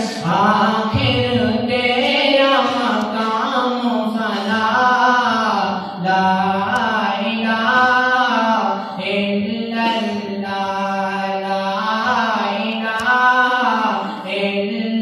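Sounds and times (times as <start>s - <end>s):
man singing into a microphone: 0.0s - 15.0s
singer breathing: 8.7s - 9.0s, 14.0s - 14.3s.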